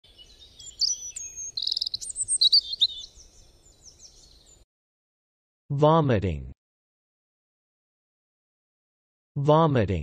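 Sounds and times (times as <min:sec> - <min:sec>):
bird chirping and trilling: 0:00.0 - 0:04.6.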